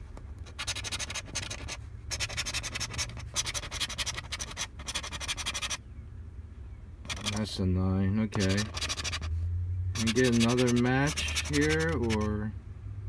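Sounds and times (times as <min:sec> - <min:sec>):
scraper rasping lottery ticket: 0:00.4 - 0:05.8, 0:07.1 - 0:07.5, 0:08.3 - 0:09.3, 0:10.0 - 0:12.4.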